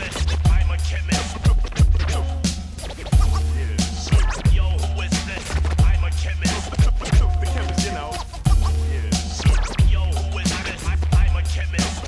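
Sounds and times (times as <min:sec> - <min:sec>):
hip-hop beat: 0:00.0 - 0:12.0
person rapping: 0:00.0 - 0:12.0
turntable scratching: 0:00.0 - 0:12.0.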